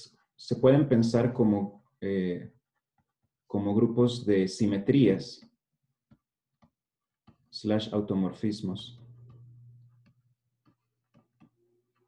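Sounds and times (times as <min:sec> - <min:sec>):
stylus tapping on tablet: 0:09.0 - 0:12.0.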